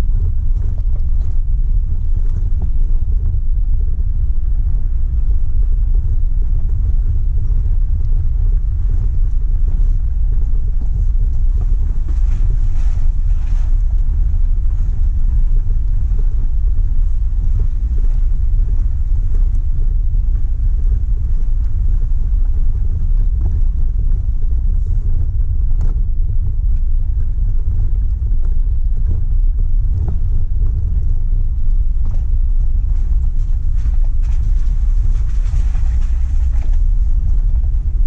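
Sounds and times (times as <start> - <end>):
faint clicks and rattles: 0.0 - 38.0
vehicle driving on gravel road: 0.0 - 38.0.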